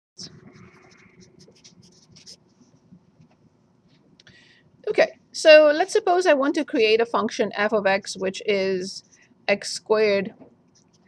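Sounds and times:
marker writing on paper: 0:00.2 - 0:02.8.

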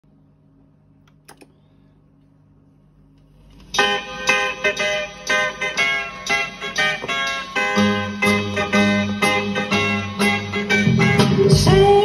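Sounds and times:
low steady hum: 0:00.0 - 0:07.3.

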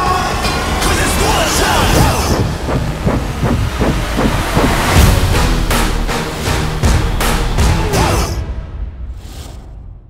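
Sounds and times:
loud rushing noise: 0:01.6 - 0:06.2
heavy thuds and clanks: 0:02.0 - 0:05.4.

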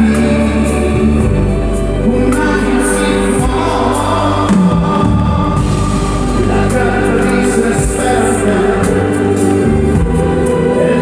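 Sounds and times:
live concert slow song with singing: 0:00.0 - 0:11.0.

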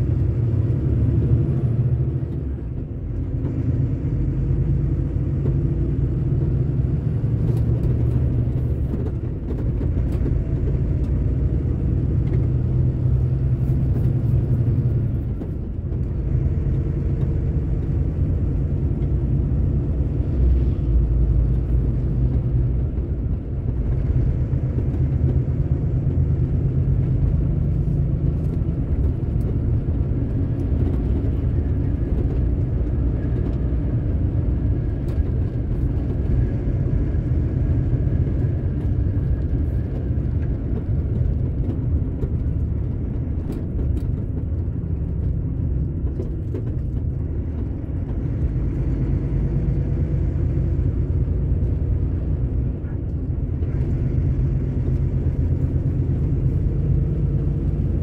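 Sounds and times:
road noise: 0:00.0 - 0:58.0
truck diesel engine rumble: 0:00.0 - 0:58.0.

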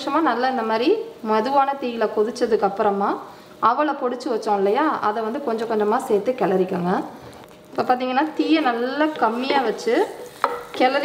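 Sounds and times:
woman speaking: 0:00.0 - 0:11.0.

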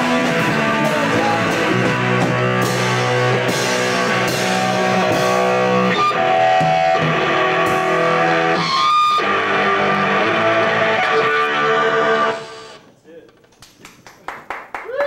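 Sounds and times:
electric guitars ringing: 0:00.0 - 0:12.9.

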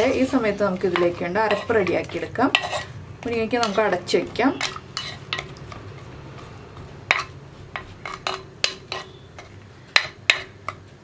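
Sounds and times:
ladle clacking against clay pot: 0:00.7 - 0:11.0.

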